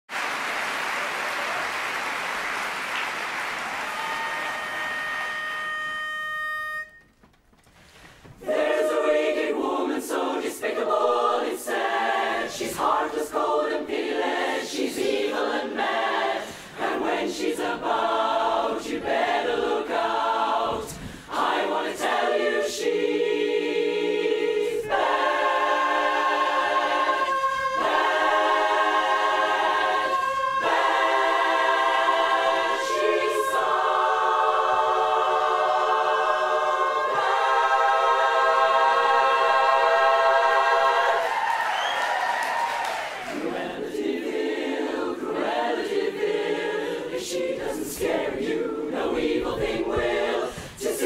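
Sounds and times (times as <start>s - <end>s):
audience applause: 0.1s - 6.0s, 41.1s - 43.6s
pitch pipe note: 4.0s - 7.2s
women's chorus singing a cappella: 8.4s - 51.0s.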